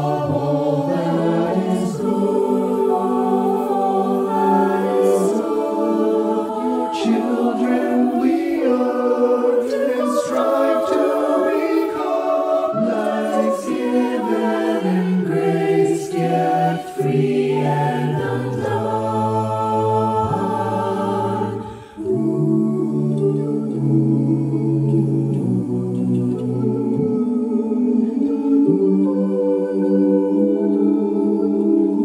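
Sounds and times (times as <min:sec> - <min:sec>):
mixed choir singing in harmony: 0:00.0 - 0:32.0.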